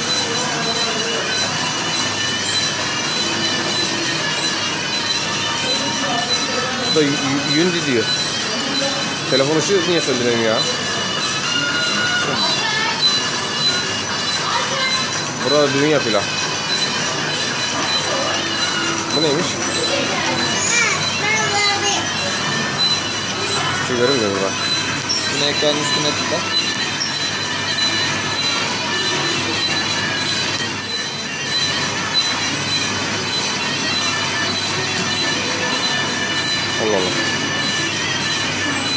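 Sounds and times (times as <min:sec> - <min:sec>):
high-pitched metallic squealing: 0:00.0 - 0:38.9
machinery rumble: 0:00.0 - 0:38.9.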